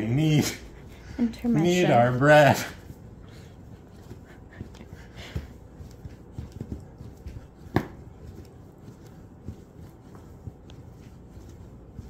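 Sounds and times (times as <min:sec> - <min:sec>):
dough kneading thuds: 0:00.0 - 0:12.0.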